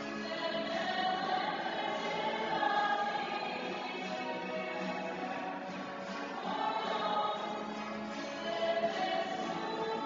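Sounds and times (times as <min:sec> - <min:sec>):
acoustic guitar: 0:00.0 - 0:10.0
group singing a hymn: 0:00.1 - 0:10.0.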